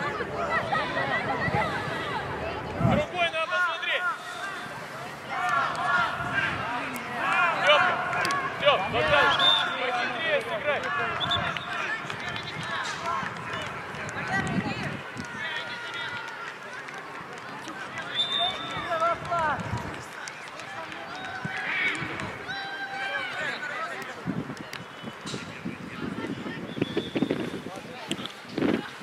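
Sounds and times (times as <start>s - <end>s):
young voices shouting: 3.0s - 13.2s, 21.0s - 24.0s.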